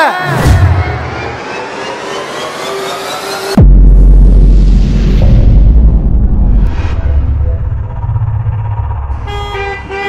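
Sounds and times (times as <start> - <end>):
riser whoosh with climbing tones: 0.5 - 3.7.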